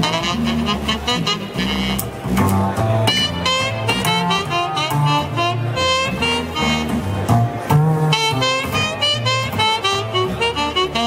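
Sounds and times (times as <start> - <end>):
synth keyboard jazz line: 0.0 - 11.0.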